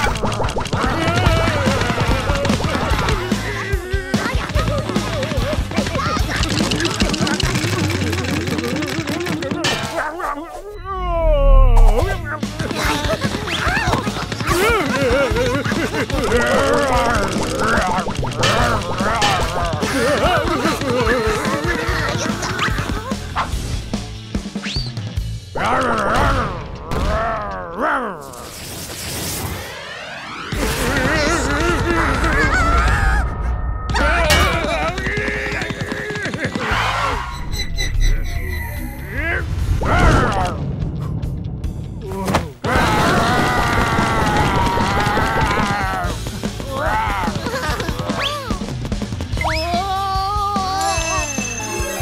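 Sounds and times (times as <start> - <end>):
bouncing cartoon music: 0.0 - 27.5, 42.6 - 52.0
deep rumble: 37.3 - 42.7.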